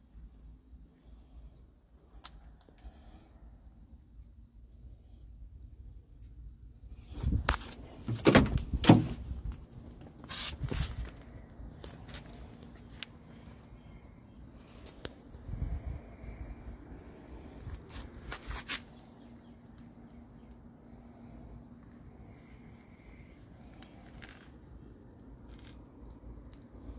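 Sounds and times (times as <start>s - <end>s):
car door knocks and scraping: 8.0s - 9.3s.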